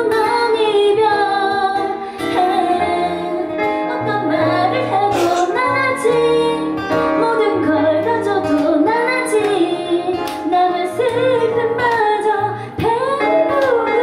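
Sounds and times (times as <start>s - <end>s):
woman singing: 0.0s - 14.0s.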